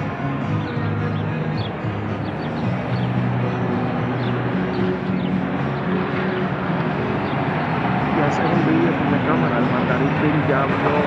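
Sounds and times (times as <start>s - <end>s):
road noise: 0.0s - 11.0s
vehicle engine running: 0.0s - 11.0s.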